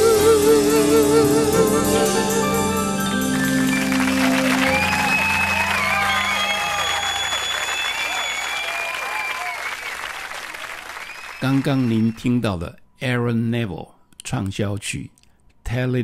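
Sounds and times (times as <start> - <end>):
audience applause and cheering: 2.4 - 12.2.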